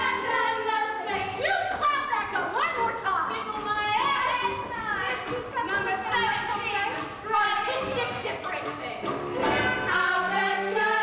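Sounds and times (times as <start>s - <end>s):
women singing together: 0.0s - 8.7s, 9.4s - 11.0s.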